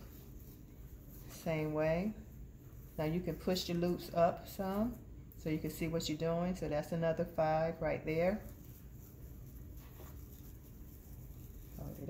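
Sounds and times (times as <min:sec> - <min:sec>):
ribbon rustling: 0:00.0 - 0:05.0, 0:08.3 - 0:12.0
steady low hum: 0:00.0 - 0:12.0.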